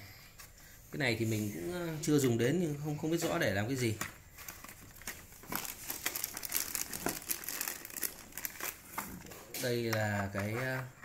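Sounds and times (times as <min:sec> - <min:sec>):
plastic and bubble wrap crinkling: 0:03.1 - 0:10.9.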